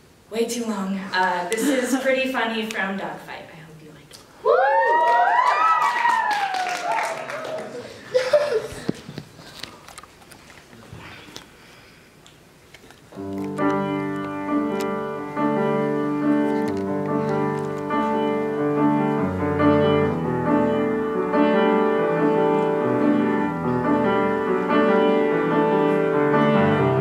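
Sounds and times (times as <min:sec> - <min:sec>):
solo piano chords: 0:13.2 - 0:27.0.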